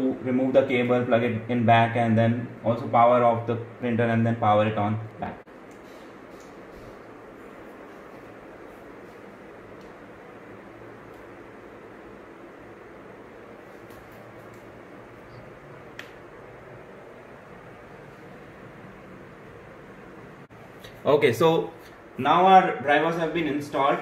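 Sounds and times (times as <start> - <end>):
room hiss and hum: 0.0 - 24.0.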